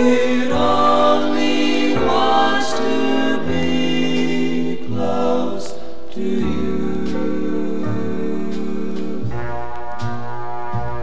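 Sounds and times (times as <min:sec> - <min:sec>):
trombone ensemble: 0:00.0 - 0:05.5, 0:06.2 - 0:11.0
vocal group singing chords: 0:00.0 - 0:09.9.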